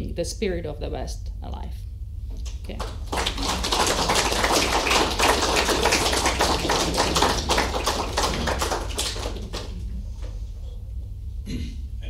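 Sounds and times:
audience applauding: 0:02.8 - 0:10.0.

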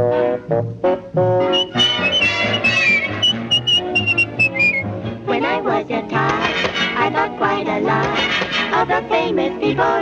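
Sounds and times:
orchestral swing tune: 0:00.0 - 0:10.0.

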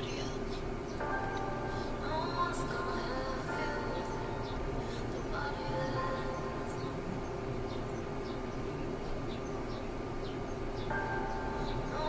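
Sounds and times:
quiet backing music: 0:00.0 - 0:12.0
woman singing a slow ballad: 0:01.4 - 0:07.2, 0:11.6 - 0:12.0.

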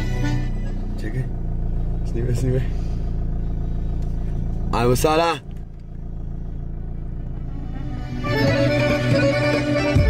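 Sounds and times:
loud music from car stereo: 0:00.0 - 0:00.9, 0:07.5 - 0:10.0
car engine idling: 0:00.0 - 0:10.0.

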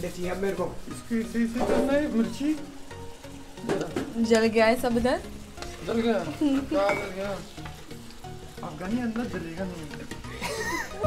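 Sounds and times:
sauce sizzling in a frying pan: 0:00.0 - 0:11.0
metal spoon stirring: 0:05.4 - 0:10.3.

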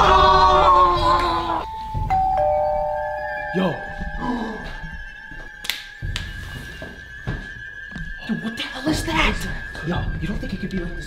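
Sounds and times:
thin steady high tone: 0:01.6 - 0:05.6
two-note doorbell chime: 0:01.7 - 0:04.4.

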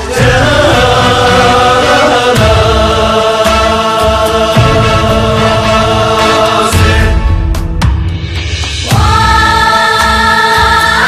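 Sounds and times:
group singing: 0:00.0 - 0:07.7, 0:08.8 - 0:11.0.

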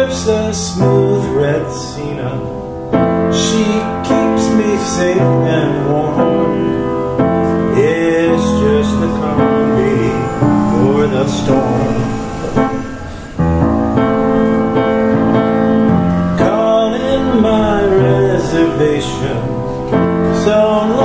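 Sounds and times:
man singing: 0:00.0 - 0:12.9, 0:16.4 - 0:21.0
upright piano chords: 0:00.0 - 0:21.0.

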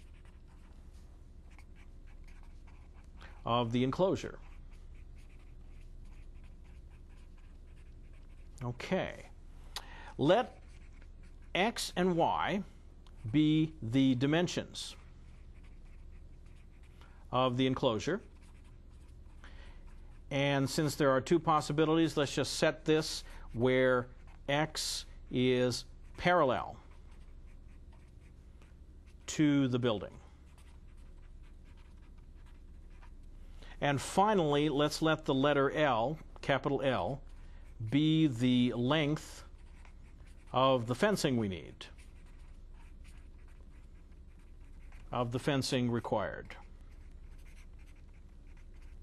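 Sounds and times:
marker scratching on paper: 0:00.0 - 0:09.3, 0:10.3 - 0:12.2, 0:14.4 - 0:17.1, 0:18.0 - 0:21.0, 0:25.7 - 0:33.2, 0:34.0 - 0:49.0.

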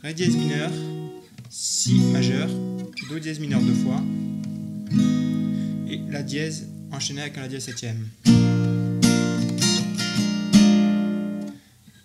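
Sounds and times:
acoustic guitar strumming chords: 0:00.0 - 0:11.6.

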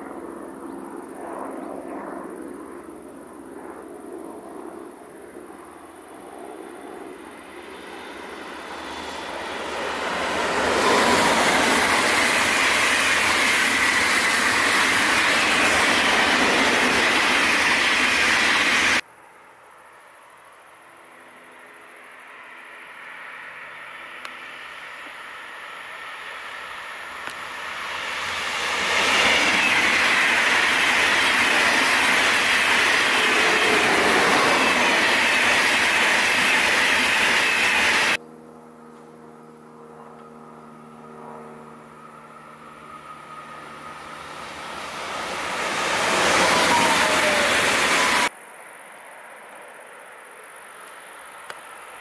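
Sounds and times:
electric train passing: 0:05.1 - 0:52.0.

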